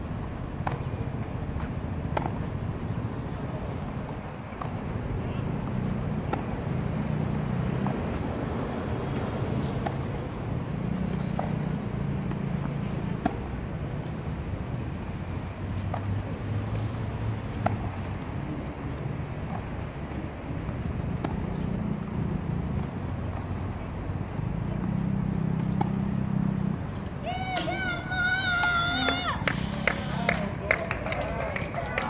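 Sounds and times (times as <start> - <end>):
tennis balls struck by racquets: 0.5 - 10.0, 11.1 - 13.7, 15.6 - 23.6, 24.5 - 31.2.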